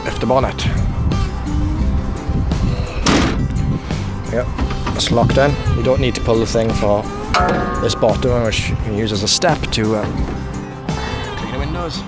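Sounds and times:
background music: 0.0s - 12.0s
heavy clunk of grille latching: 3.0s - 3.5s.

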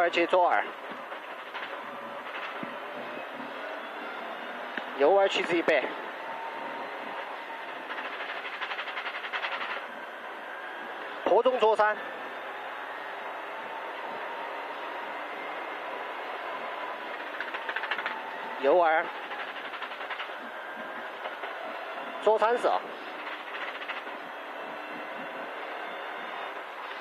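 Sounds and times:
car engine and road noise: 0.0s - 27.0s.

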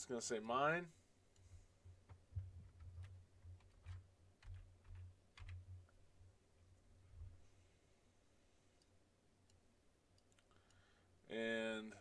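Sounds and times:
faint keyboard typing: 1.3s - 6.0s.

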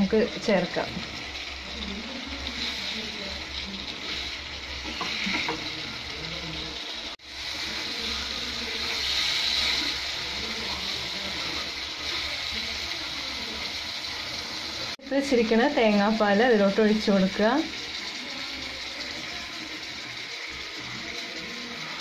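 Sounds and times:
food sizzling in a frying pan: 0.0s - 22.0s
spatula stirring in pan: 0.0s - 22.0s.

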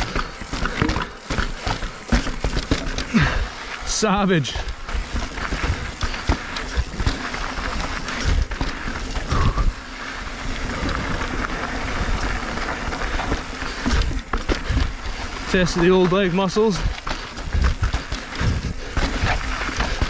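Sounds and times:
bike clattering and knocking: 0.0s - 3.7s, 4.5s - 9.7s, 10.6s - 20.0s
continuous low rumble: 0.0s - 20.0s
tyres crunching over stones: 0.0s - 20.0s.

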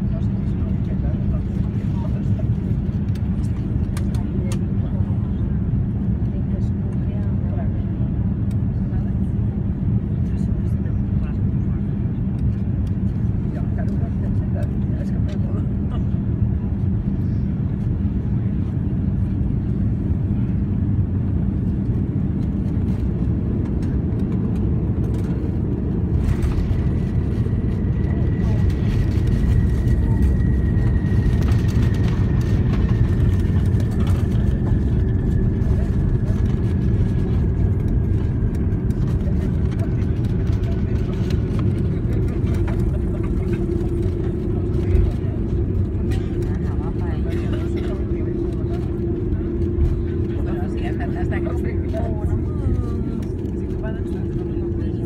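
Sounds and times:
aircraft cabin rumble: 0.0s - 55.0s.

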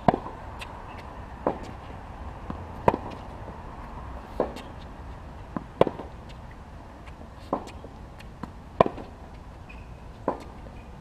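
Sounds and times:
tennis ball impacts: 0.0s - 10.9s.

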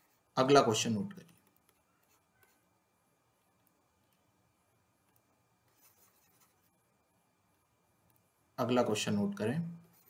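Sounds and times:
faint soft scratching: 1.3s - 2.8s, 5.0s - 7.0s, 9.8s - 10.0s.

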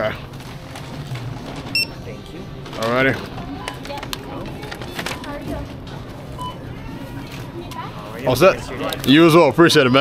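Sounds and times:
barcode scanner beep: 1.7s - 2.0s.

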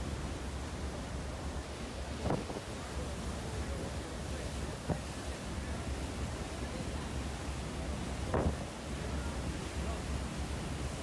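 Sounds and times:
boat rumble: 0.0s - 11.0s
wind buffeting microphone: 8.2s - 8.8s.

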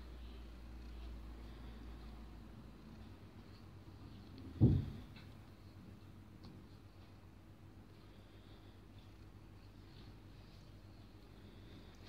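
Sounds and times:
dull thump: 4.4s - 5.2s.

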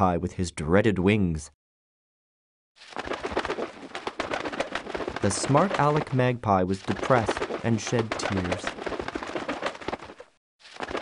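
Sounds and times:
magpie rattling chatter: 2.9s - 10.3s.

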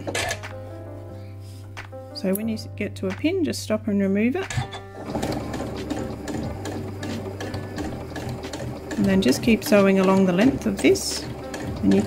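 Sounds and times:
sewing machine running: 4.5s - 12.0s.

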